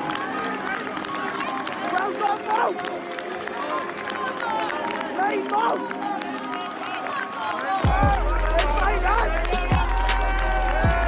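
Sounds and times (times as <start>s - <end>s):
crowd of voices: 0.0s - 11.0s
people shouting: 0.0s - 11.0s.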